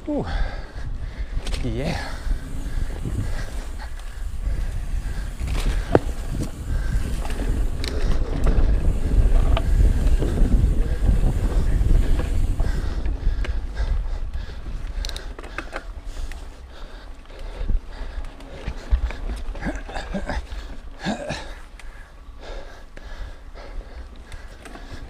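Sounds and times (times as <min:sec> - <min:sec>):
bike rattling over bumps: 0:00.3 - 0:25.0
tyres rumbling on dirt: 0:01.7 - 0:13.3.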